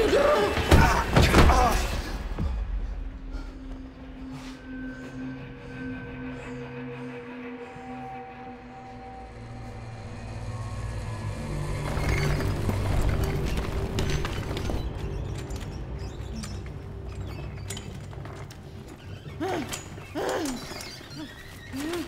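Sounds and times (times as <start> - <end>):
low ominous drone music: 0.0 - 22.0
wheelchair creaking and rattling: 11.7 - 22.0.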